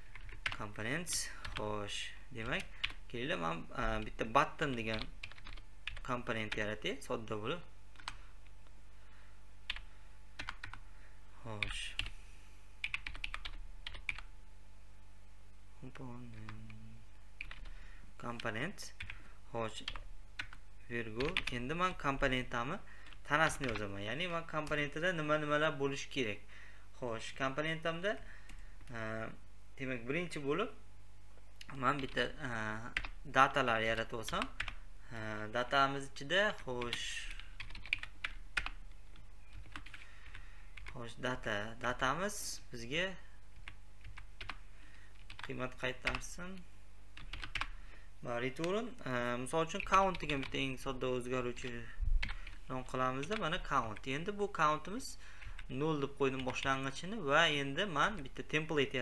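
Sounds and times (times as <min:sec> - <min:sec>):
steady low hum: 0:00.0 - 0:59.0
typing on computer keyboard: 0:00.1 - 0:00.6, 0:04.8 - 0:06.1, 0:09.7 - 0:10.8, 0:12.8 - 0:14.3, 0:17.4 - 0:17.7, 0:19.8 - 0:20.6, 0:21.2 - 0:21.6, 0:23.0 - 0:23.9, 0:34.3 - 0:34.8, 0:36.8 - 0:41.0, 0:43.6 - 0:44.6, 0:45.2 - 0:46.2, 0:47.2 - 0:47.7, 0:52.2 - 0:52.6.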